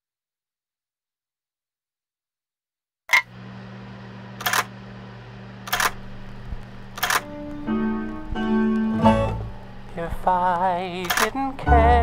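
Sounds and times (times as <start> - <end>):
low hum: 3.3 - 12.0
vinyl record pops: 6.0 - 9.0
vinyl crackle: 6.0 - 11.6
instrumental song intro: 7.2 - 12.0
turntable click: 11.0 - 11.5.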